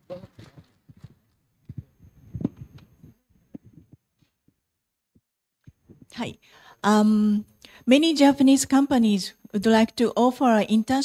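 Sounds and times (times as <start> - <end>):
microphone handling thumps: 0.2 - 6.2.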